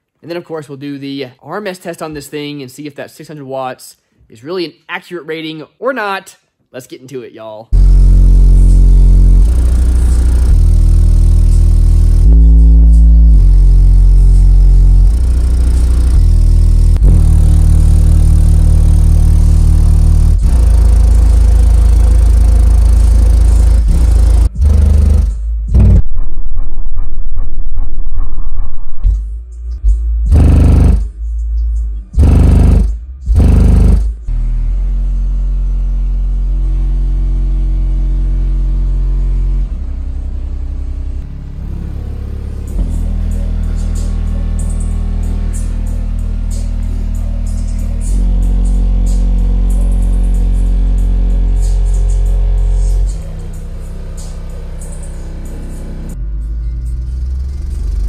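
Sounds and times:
subwoofer playing bass-heavy music: 0:07.8 - 0:58.0.

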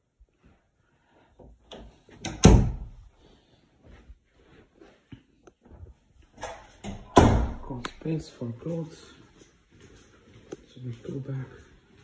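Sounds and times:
door clicks: 0:01.7 - 0:02.9
door thud: 0:02.2 - 0:03.0, 0:06.4 - 0:07.8.

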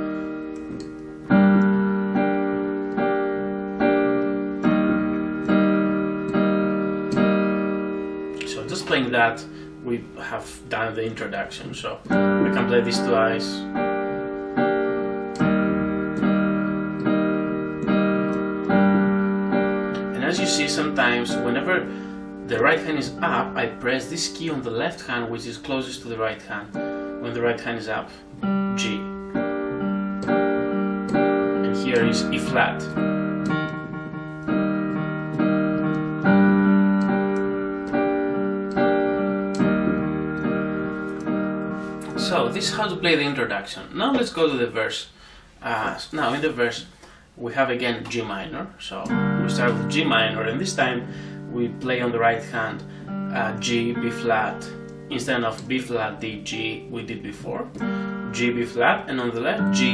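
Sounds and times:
piano chords: 0:00.0 - 0:59.9.

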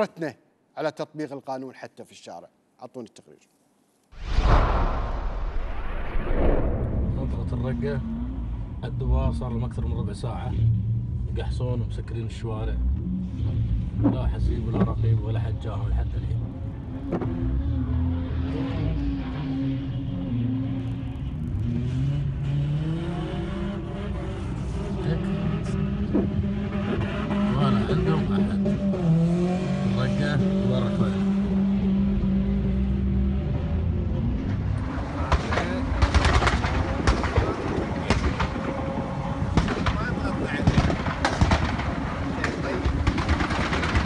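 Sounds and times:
car engines revving: 0:06.8 - 0:44.0
sharp bangs: 0:35.2 - 0:38.9, 0:39.5 - 0:44.0.

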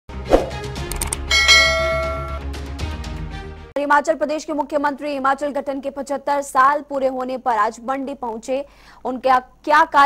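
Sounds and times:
bright bell-like chime: 0:01.3 - 0:02.4.

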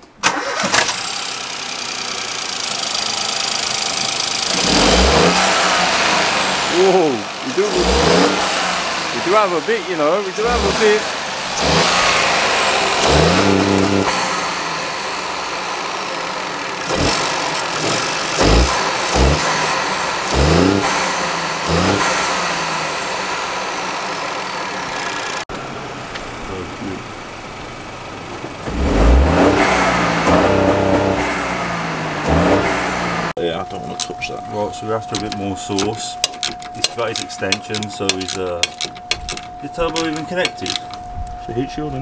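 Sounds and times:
car engine revving: 0:00.2 - 0:41.2.

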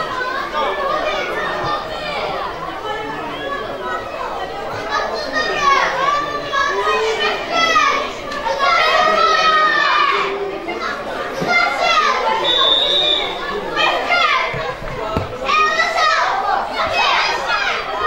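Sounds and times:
boys shouting: 0:00.0 - 0:18.0.

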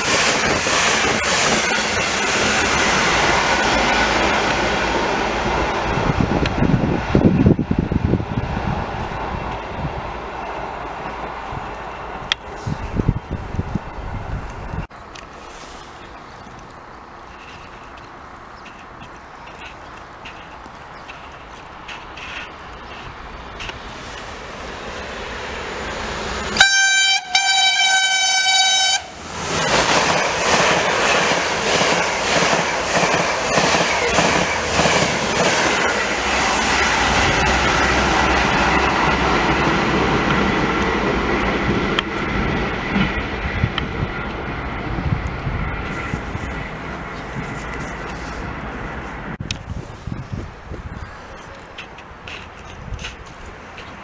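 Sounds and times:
passenger train rumbling: 0:00.0 - 0:54.0
wheels clicking over rail joints: 0:14.4 - 0:24.4, 0:51.0 - 0:54.0
train horn blasts: 0:26.6 - 0:29.2.

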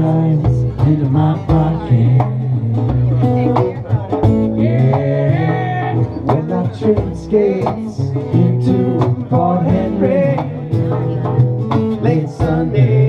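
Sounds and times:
acoustic guitars strumming: 0:00.0 - 0:13.0
drum strikes: 0:00.0 - 0:13.0.

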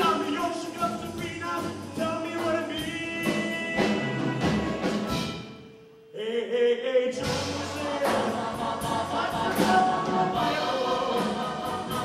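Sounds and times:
orchestra playing rock and roll: 0:00.0 - 0:05.8, 0:07.2 - 0:12.0.

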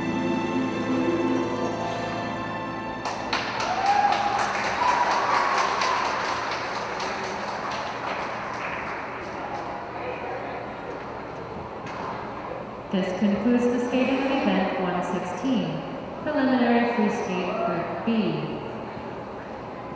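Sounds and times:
spectators applauding: 0:03.0 - 0:10.6
voices cheering: 0:03.4 - 0:07.7.

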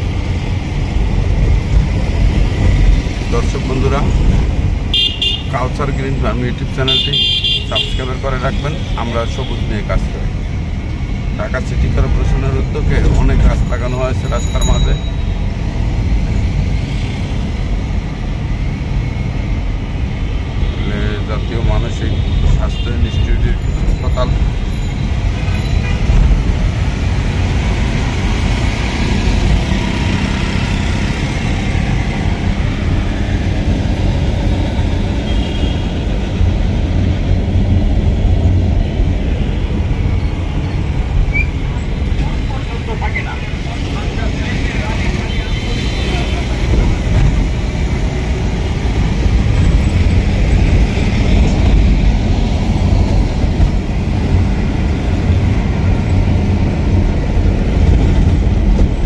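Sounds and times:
ambulance engine and road rumble: 0:00.0 - 0:59.0
passing city traffic: 0:00.0 - 0:59.0.

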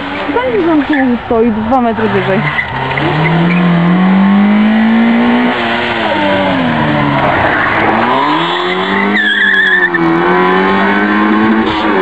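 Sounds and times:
rally car engine revving: 0:00.0 - 0:12.0.

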